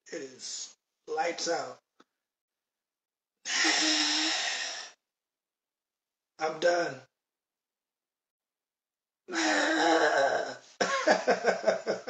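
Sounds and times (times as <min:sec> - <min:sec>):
man groaning: 0:09.3 - 0:10.6
man laughing: 0:09.3 - 0:12.0.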